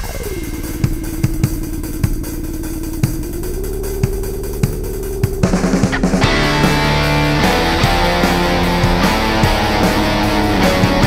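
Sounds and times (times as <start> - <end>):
bass drum thumps: 0.0 - 11.0
buzzing low drone: 0.0 - 11.0.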